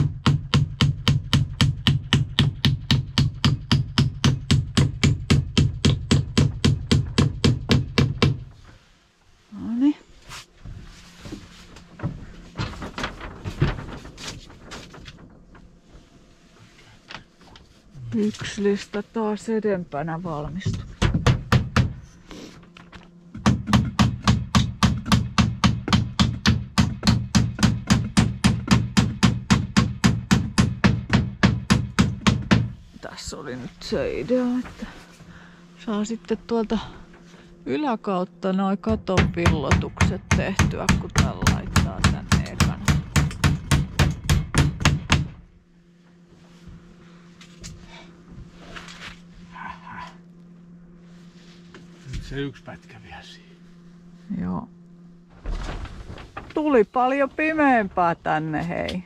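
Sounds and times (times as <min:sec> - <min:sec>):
hammer nailing wood: 0:00.0 - 0:08.5, 0:20.7 - 0:22.0, 0:23.4 - 0:32.8, 0:38.9 - 0:45.4.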